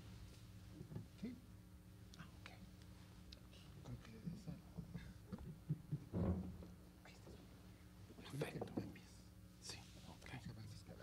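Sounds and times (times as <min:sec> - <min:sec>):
low electrical hum: 0:00.0 - 0:11.0
faint whispered speech: 0:07.0 - 0:07.6, 0:08.2 - 0:11.0.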